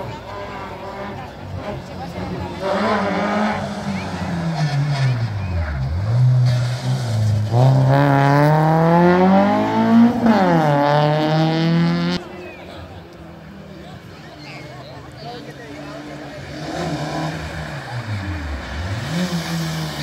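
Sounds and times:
rally car engine revving: 0.0s - 12.3s, 15.6s - 20.0s.

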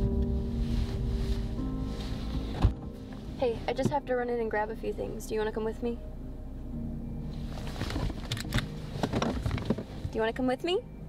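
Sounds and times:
clothing rustling: 0.2s - 3.8s, 7.3s - 10.1s.

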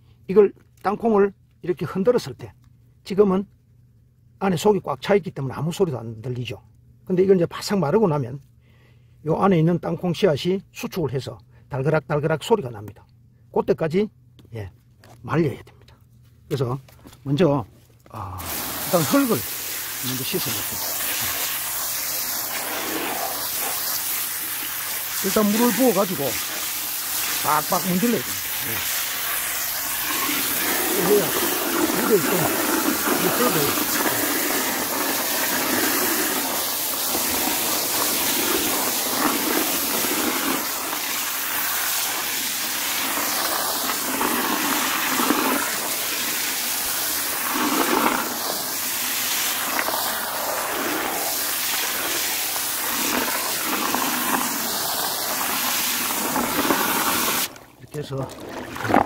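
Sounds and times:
water rushing: 18.4s - 59.0s
water sloshing: 57.5s - 59.0s.

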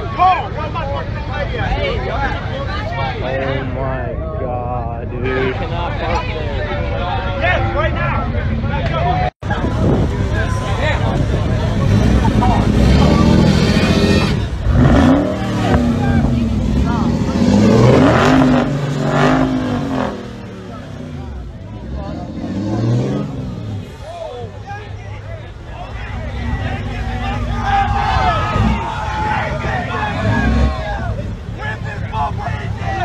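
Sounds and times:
crowd chattering: 0.0s - 33.0s
car engine revving: 9.8s - 24.1s, 25.7s - 33.0s.

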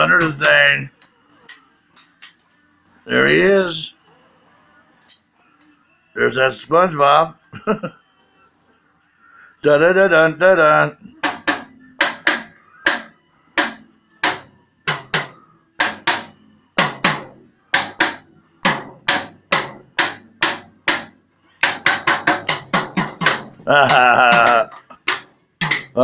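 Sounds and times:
toy drum hits with sticks: 0.0s - 0.7s, 11.2s - 26.0s.

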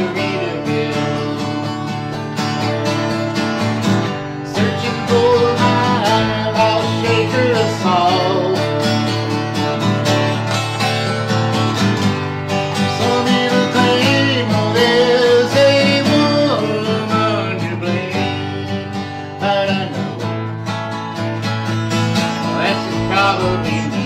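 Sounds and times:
acoustic guitar strumming: 0.0s - 24.0s.

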